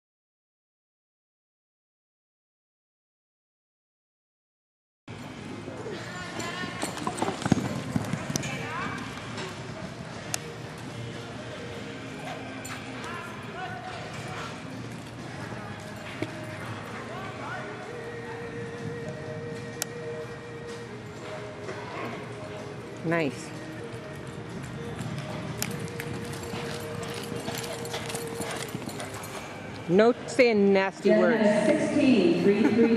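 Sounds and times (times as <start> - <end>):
steady background noise: 5.1 - 32.9
horse hooves galloping on dirt: 5.3 - 30.0.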